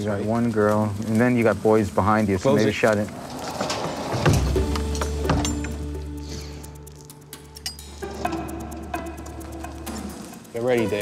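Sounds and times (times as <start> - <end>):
music of low held notes: 4.1 - 11.0.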